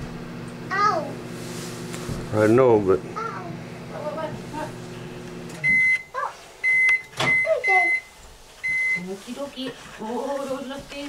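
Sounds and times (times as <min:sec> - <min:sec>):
microwave oven humming: 0:00.0 - 0:09.2
short high beeps: 0:05.6 - 0:09.0.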